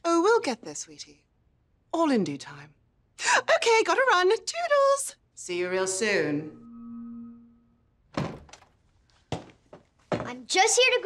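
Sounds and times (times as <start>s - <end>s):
held tone: 5.6s - 7.9s.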